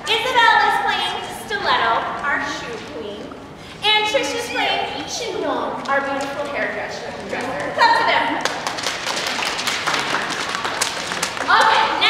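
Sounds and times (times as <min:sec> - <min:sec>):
children applauding: 0:08.4 - 0:12.0.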